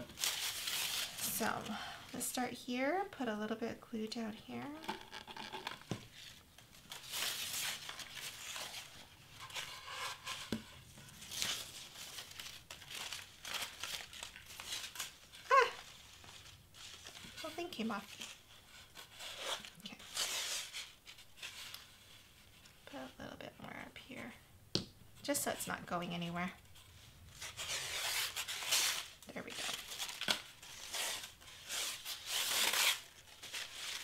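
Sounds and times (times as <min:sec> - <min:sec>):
paper streamer rustling: 0:00.0 - 0:01.9, 0:06.1 - 0:22.7.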